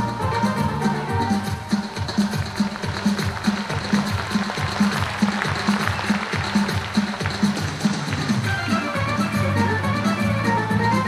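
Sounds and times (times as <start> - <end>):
quick drum beat: 0.0 - 9.6
folk dance music: 0.0 - 11.0.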